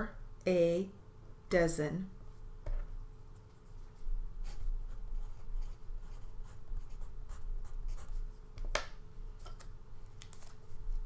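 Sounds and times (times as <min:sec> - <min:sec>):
faint steady hum: 0:00.0 - 0:11.0
paper rustling: 0:09.6 - 0:11.0.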